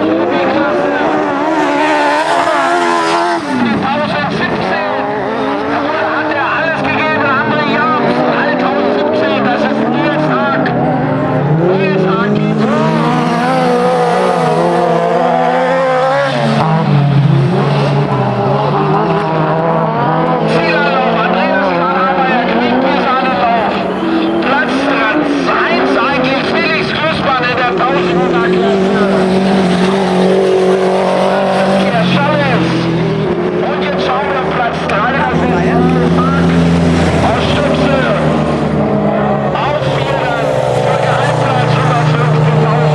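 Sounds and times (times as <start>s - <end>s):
racing car engines revving: 0.0s - 42.9s.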